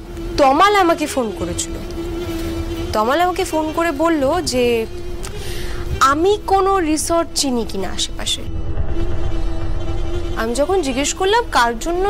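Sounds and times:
woman speaking: 0.4 - 2.0, 2.9 - 5.0, 5.8 - 8.5, 10.4 - 12.0.

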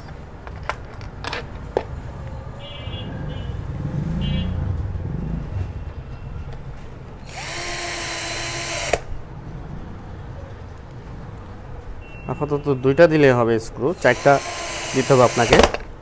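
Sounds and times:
cordless drill motor: 7.2 - 9.1, 13.9 - 15.8
drill clutch click: 7.2 - 9.1, 14.0 - 15.8.

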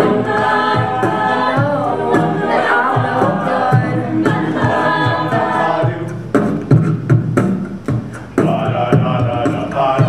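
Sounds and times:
a cappella group singing chords: 0.0 - 6.8, 8.2 - 10.0
beatboxed kick-drum beats: 0.0 - 10.0.

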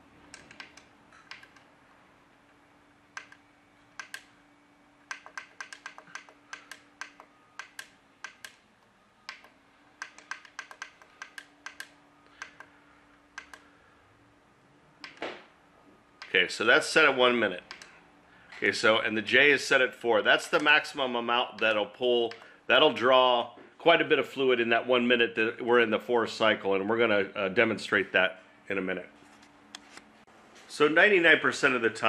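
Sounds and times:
faint steady hum: 0.0 - 32.0
push buttons clicking: 0.3 - 1.7, 3.1 - 4.3, 5.1 - 8.6, 9.2 - 13.7, 15.0 - 15.3, 17.6 - 18.0.

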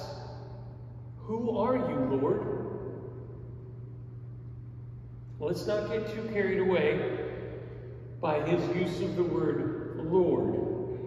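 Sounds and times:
man's voice reverberating: 0.0 - 3.4, 5.4 - 11.0
low hum with faint hiss: 0.0 - 11.0.

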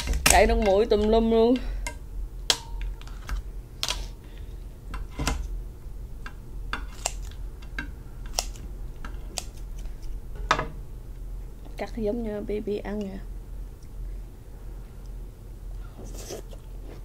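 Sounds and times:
scissors cracking lobster shell: 6.8 - 7.4, 8.2 - 9.9.

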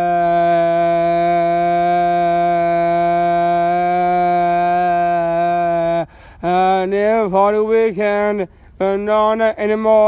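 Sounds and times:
person singing long note: 0.0 - 6.9.

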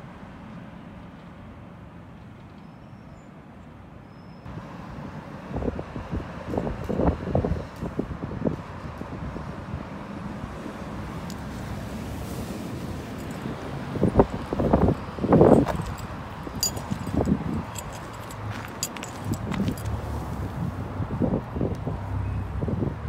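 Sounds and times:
distant road traffic hum: 0.0 - 23.0.

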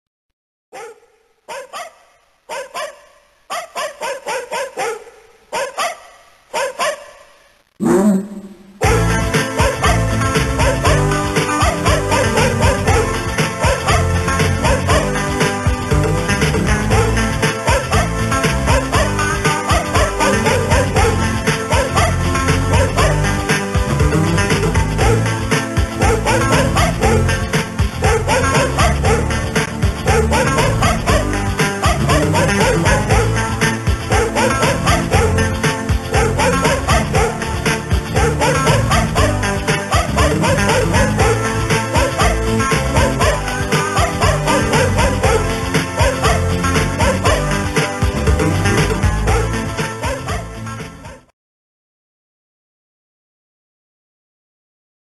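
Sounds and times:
dog barking: 0.7 - 15.3, 16.8 - 23.4, 24.9 - 48.4, 49.2 - 51.3
music with fast beat: 8.8 - 51.2.

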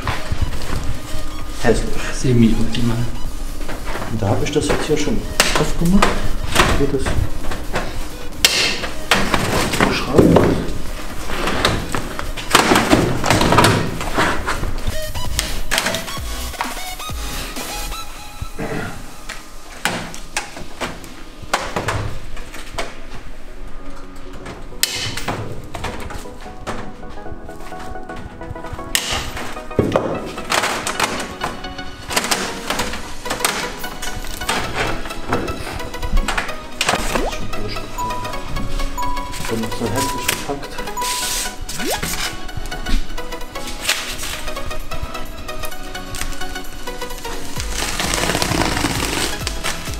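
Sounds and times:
background music: 0.0 - 49.9.

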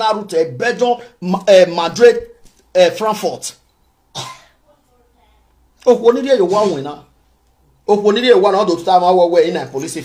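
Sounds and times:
man talking: 0.0 - 3.6, 5.8 - 7.1, 7.8 - 10.0
man clearing throat: 4.2 - 4.6.

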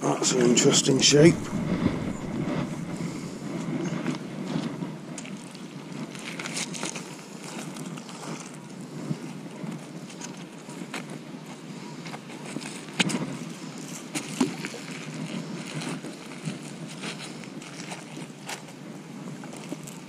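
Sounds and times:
low background noise: 0.0 - 20.0.

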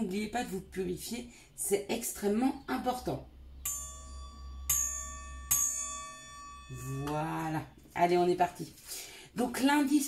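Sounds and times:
singing bowl ringing: 3.6 - 7.8.

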